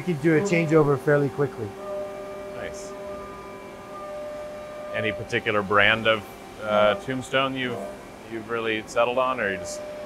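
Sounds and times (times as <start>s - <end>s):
shop machinery humming: 0.0s - 10.0s.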